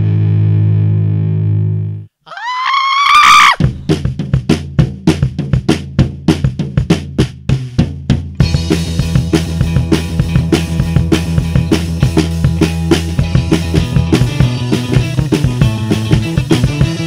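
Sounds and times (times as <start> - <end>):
bass drum and snare hits: 3.6 - 17.0.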